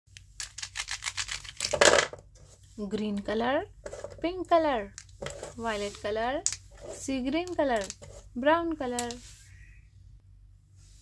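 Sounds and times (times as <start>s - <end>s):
pens clattering on paper: 1.2s - 2.2s, 5.0s - 8.3s
plastic pens clicking together: 7.4s - 8.1s, 8.9s - 9.2s.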